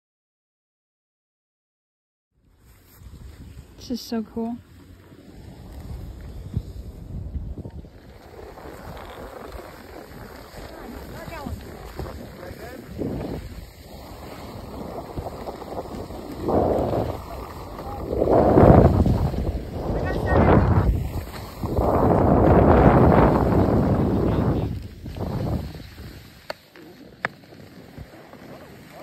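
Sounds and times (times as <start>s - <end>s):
skis scraping over snow: 2.5s - 29.0s
wind rushing over microphone: 3.0s - 26.5s.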